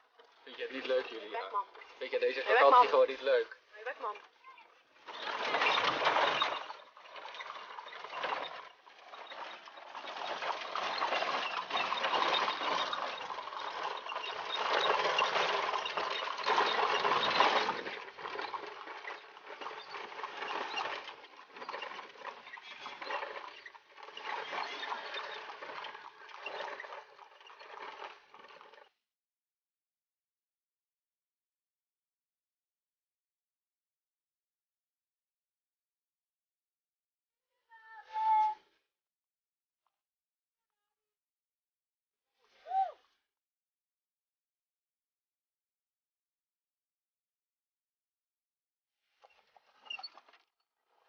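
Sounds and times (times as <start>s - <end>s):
horse-drawn cart rattling: 0.0s - 28.9s.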